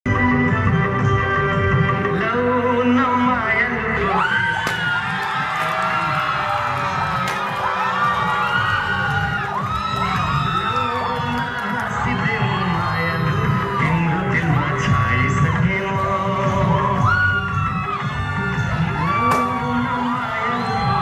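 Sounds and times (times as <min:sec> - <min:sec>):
audience cheering and whooping: 0:04.0 - 0:21.0
dance music with steady beat: 0:04.4 - 0:21.0.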